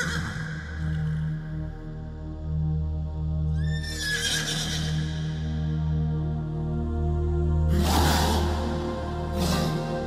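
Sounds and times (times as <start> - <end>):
horse neighing: 0.0 - 1.2, 3.6 - 5.4
slow instrumental music: 0.0 - 10.0.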